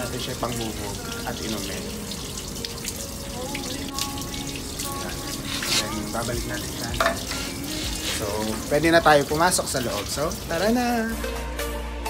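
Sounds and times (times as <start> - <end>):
water running into stone basin: 0.0 - 11.2
hands splashing water: 0.5 - 10.7.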